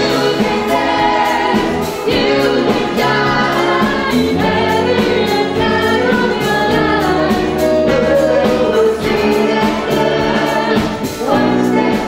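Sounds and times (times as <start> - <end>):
big band playing live: 0.0 - 12.0
vocalists singing together: 0.0 - 12.0.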